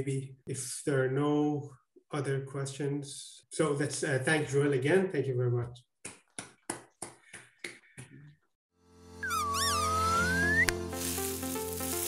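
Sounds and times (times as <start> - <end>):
hand claps: 6.0 - 8.2
whistle-like sliding melody: 9.1 - 11.0.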